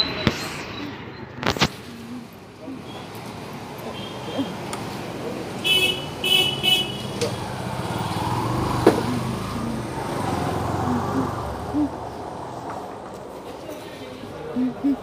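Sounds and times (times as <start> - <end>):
vehicle horn beeps: 3.9 - 4.5, 5.6 - 7.1
motorcycle engine passing: 7.3 - 12.7.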